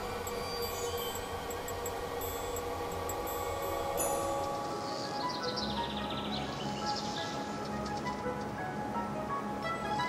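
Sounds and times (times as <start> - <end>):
mining machines and fans whirring: 0.0 - 5.0.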